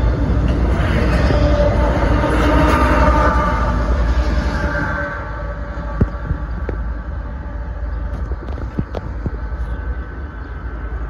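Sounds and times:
freight train wheels rumbling: 0.0s - 11.0s.

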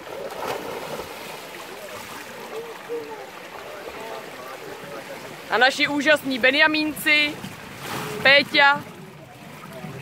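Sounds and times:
pool water splashing: 0.0s - 10.0s
faint voices: 1.3s - 7.1s.

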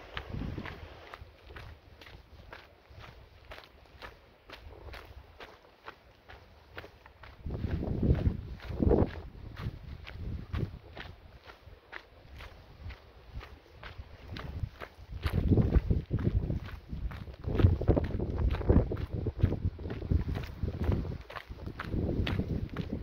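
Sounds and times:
footsteps on gravel trail: 0.0s - 23.0s.

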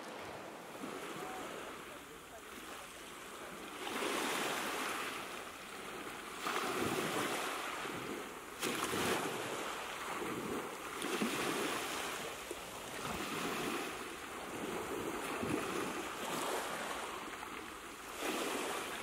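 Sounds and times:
sea surf washing: 0.0s - 19.0s.

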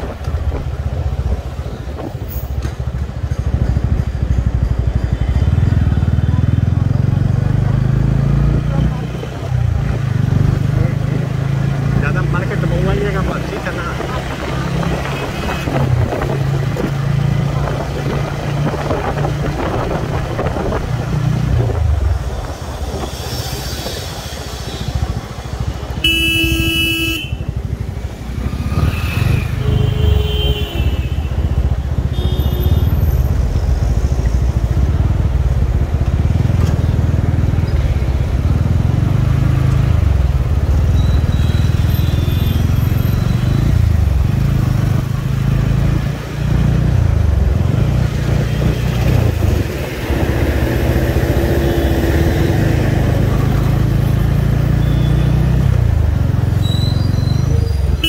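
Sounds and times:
vehicle horn honking: 26.0s - 27.5s, 29.6s - 31.4s, 32.1s - 33.0s.

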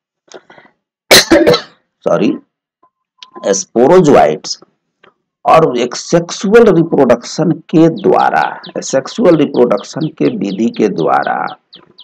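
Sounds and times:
man coughing: 1.1s - 1.7s.

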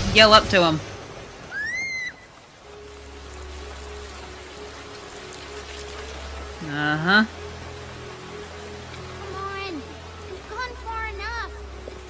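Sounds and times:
heavy rain: 0.0s - 12.0s
high rising and falling cry: 1.4s - 2.3s.

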